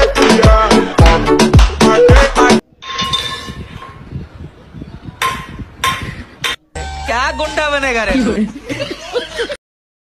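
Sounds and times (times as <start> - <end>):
sharp metallic clanks: 2.8 - 4.0, 5.2 - 6.7.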